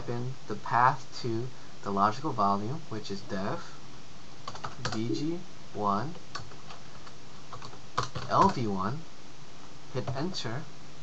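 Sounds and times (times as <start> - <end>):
computer keyboard keystrokes: 4.5 - 5.0, 6.3 - 8.6.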